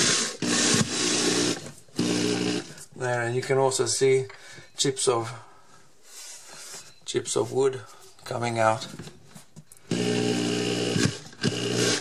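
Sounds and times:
power drill driving screw into wood: 0.0 - 2.7, 9.9 - 12.0.

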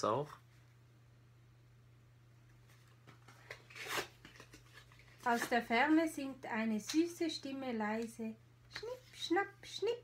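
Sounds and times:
paper cards rustling: 2.7 - 5.7.

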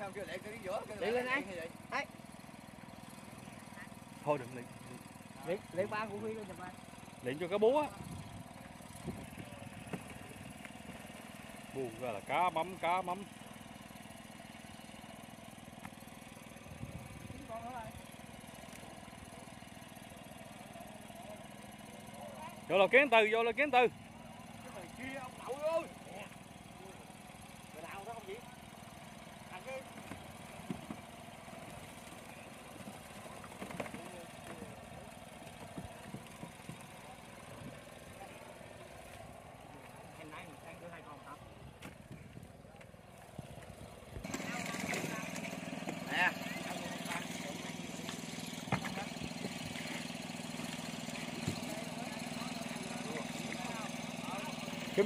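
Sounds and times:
low engine hum: 0.0 - 55.0
distant voices: 24.0 - 55.0.

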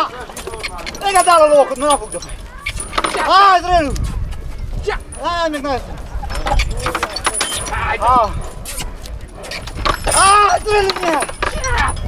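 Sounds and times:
harness chains clinking: 0.0 - 3.9, 4.8 - 12.0.

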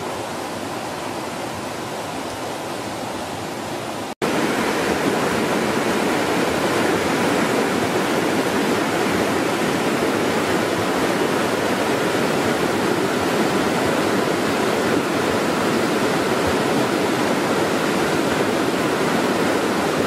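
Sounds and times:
river water rushing: 0.0 - 20.0.

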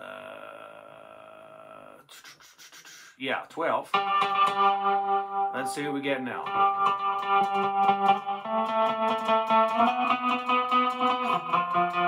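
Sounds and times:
man saying uhh: 0.0 - 3.8
breaths: 2.1 - 3.2.

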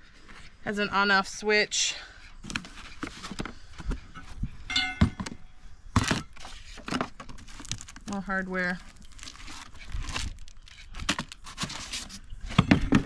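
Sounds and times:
foam and cardboard rustling: 2.4 - 4.6, 5.2 - 13.0.

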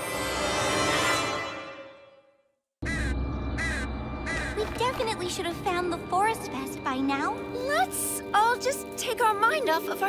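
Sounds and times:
crow cawing: 2.8 - 4.8.

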